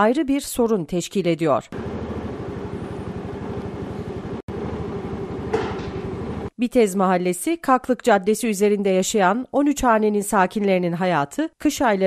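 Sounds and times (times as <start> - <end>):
vehicle engine running: 1.8 - 6.5.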